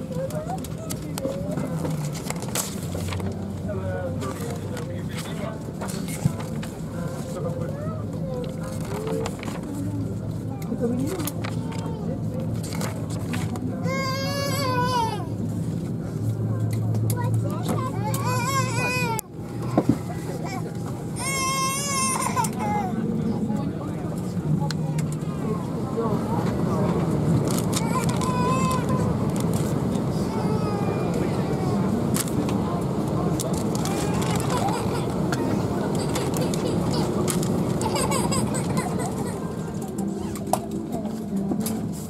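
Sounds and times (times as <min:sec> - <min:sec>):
passenger murmur: 0:00.0 - 0:42.0.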